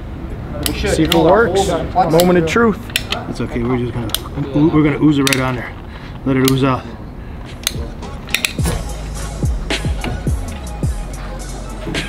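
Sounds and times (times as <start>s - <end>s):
sharp clicks: 2.9s - 3.2s, 5.2s - 5.6s, 7.6s - 8.8s
background music: 7.6s - 12.0s
bass drum beat falling in pitch: 8.6s - 12.0s.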